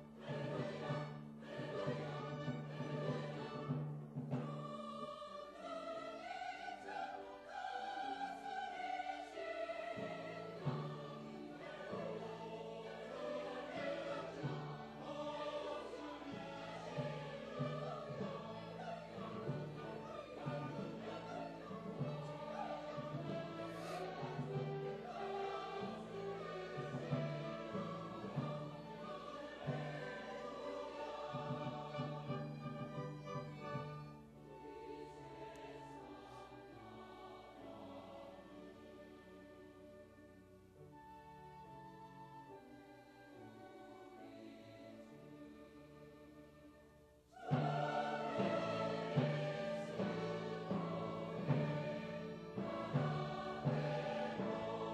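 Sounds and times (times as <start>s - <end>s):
choir singing: 0.0s - 54.9s.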